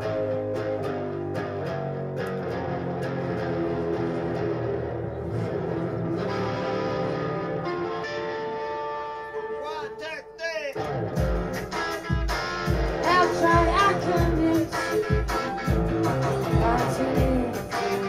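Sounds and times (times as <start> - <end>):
electric guitar chords: 0.0 - 18.0
bass drum beat: 11.1 - 18.0
person singing: 12.8 - 18.0.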